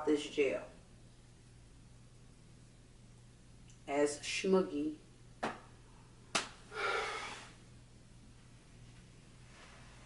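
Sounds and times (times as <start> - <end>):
soft breathy sound: 6.7 - 7.6.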